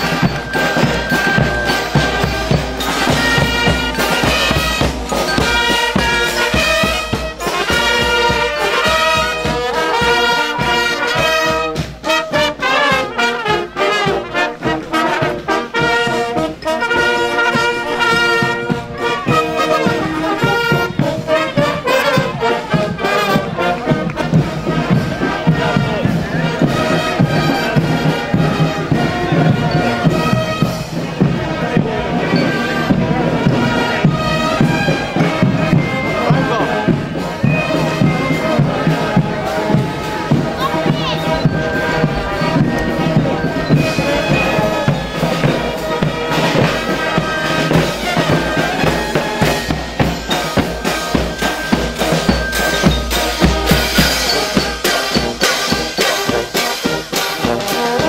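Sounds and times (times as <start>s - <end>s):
crowd voices: 0.0s - 58.0s
drum beats: 0.0s - 58.0s
marching band playing: 0.0s - 58.0s.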